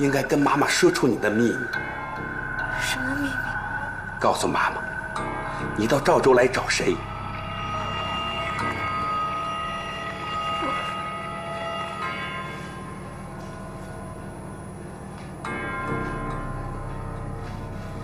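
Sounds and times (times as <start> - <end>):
bell-like tones: 0.0 - 18.0
low steady drone: 0.0 - 18.0.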